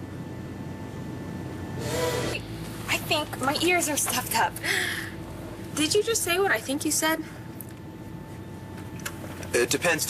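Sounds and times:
airliner cabin hum: 0:00.0 - 0:10.0.

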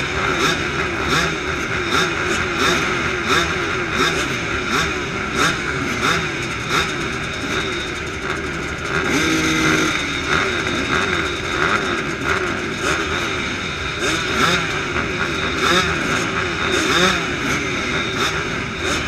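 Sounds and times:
small race engines revving: 0:00.0 - 0:19.0.

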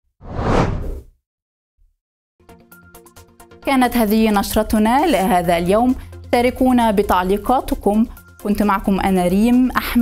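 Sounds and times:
whoosh sound effect: 0:00.2 - 0:01.1.

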